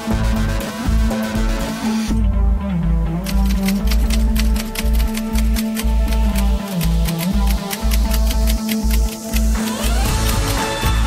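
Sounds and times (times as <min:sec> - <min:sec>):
electronic music with steady beat: 0:00.0 - 0:11.0
typewriter key clicks: 0:03.2 - 0:09.5.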